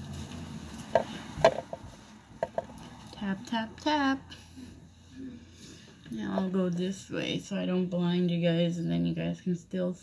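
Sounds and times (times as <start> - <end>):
objects knocking on hard surface: 0.8 - 2.8.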